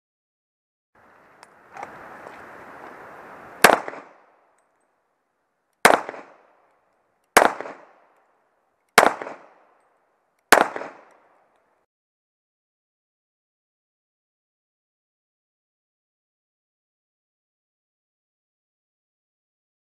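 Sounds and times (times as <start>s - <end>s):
pistol shots with echo: 3.6s - 4.4s, 5.8s - 6.7s, 7.3s - 8.2s, 8.9s - 9.8s, 10.5s - 11.4s.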